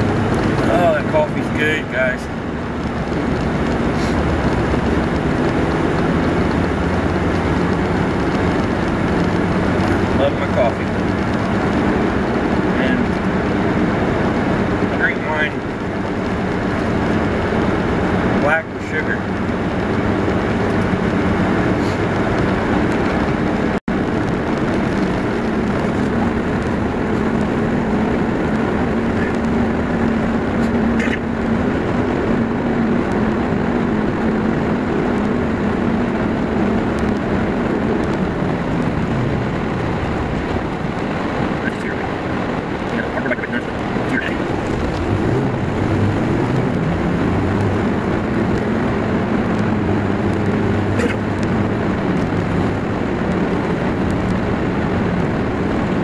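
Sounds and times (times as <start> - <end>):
car engine hum: 0.0 - 56.0
road noise: 0.0 - 56.0.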